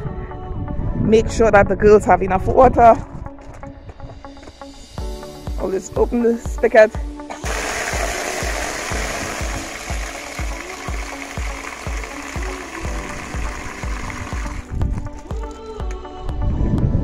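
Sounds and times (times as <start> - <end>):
background music with beat: 3.2 - 16.6
hose water gushing into tub: 7.3 - 15.5.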